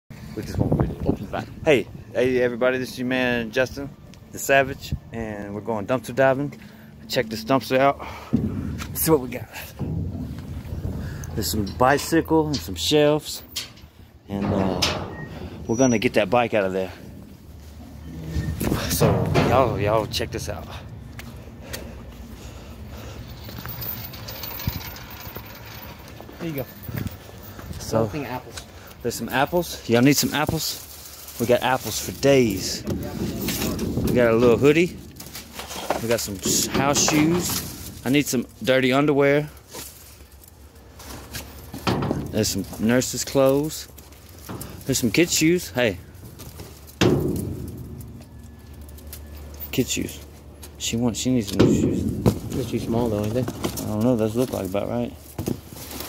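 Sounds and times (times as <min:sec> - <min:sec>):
engine idling rumble: 0:03.1 - 0:28.0, 0:30.8 - 0:55.4.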